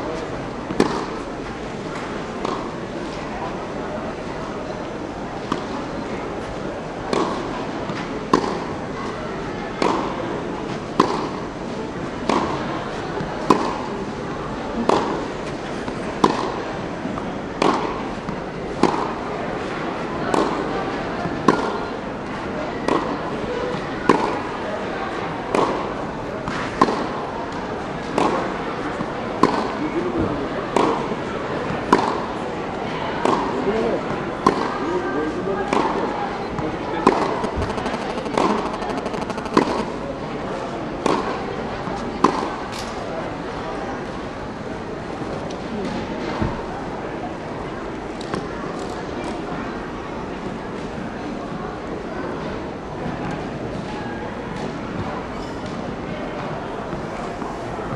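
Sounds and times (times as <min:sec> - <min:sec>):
murmur of spectator chatter: 0:00.0 - 0:57.9.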